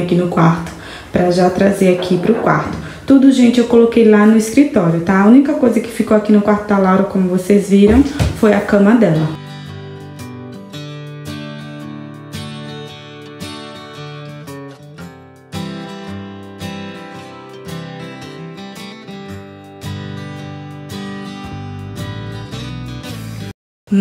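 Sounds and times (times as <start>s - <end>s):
plucked acoustic guitar music: 1.3s - 3.5s, 9.1s - 23.5s.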